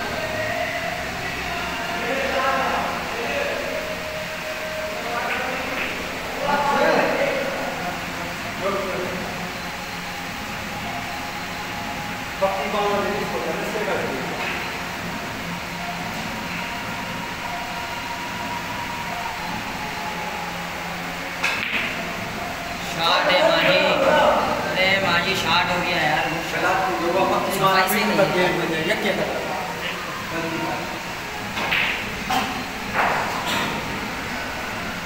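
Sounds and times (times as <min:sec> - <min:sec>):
snooker balls clicking: 0:21.4 - 0:22.1, 0:31.5 - 0:33.8.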